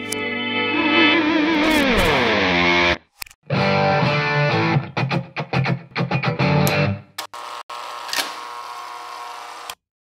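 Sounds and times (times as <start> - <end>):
electric guitar chords: 0.2 - 7.2.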